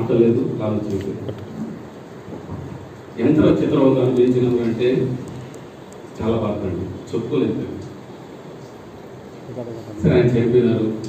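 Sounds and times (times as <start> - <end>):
man speaking amplified: 0.0 - 1.3, 3.2 - 5.3, 6.2 - 8.0, 9.5 - 11.0
low rumbling room noise: 0.0 - 11.0.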